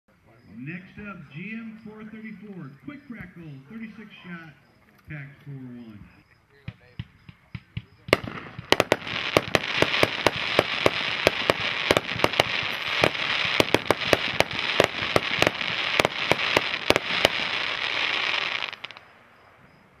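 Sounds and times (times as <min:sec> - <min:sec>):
fireworks firing: 0:06.6 - 0:19.1
dense crackle of fireworks: 0:06.8 - 0:19.1.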